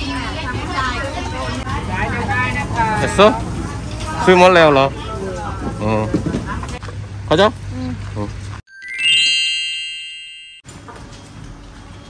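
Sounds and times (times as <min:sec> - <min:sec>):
market noise: 0:00.0 - 0:08.6.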